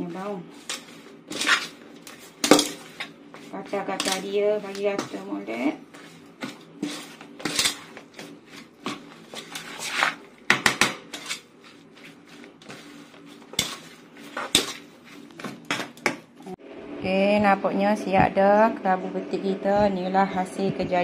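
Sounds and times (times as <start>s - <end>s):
metal spoon scraping a pot: 0.6s - 5.3s, 6.8s - 10.2s, 11.1s - 15.9s.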